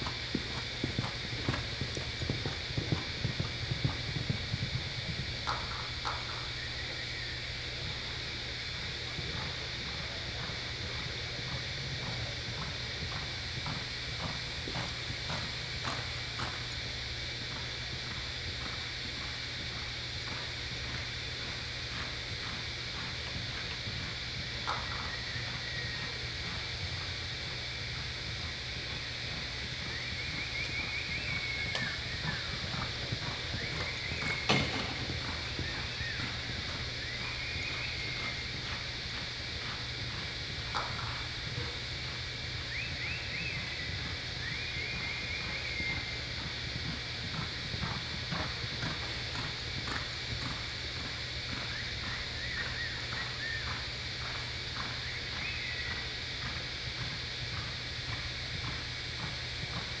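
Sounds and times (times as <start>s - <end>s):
horse hoofbeats on dirt: 0.0s - 7.0s, 7.6s - 60.0s.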